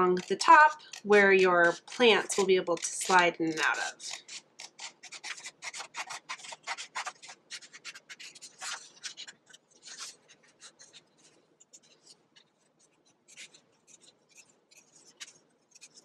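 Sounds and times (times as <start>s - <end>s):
scissors snipping paper: 0.0s - 16.0s.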